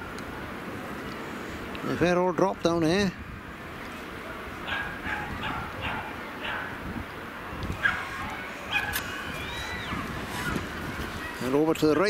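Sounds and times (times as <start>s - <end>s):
seaside background noise: 0.0s - 12.0s
distant animal high calls: 7.8s - 10.6s.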